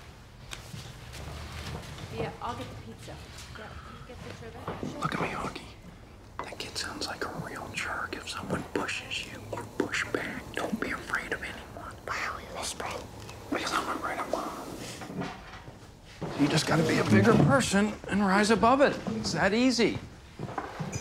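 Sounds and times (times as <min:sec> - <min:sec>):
man whispering: 0:05.0 - 0:05.8, 0:06.4 - 0:15.0.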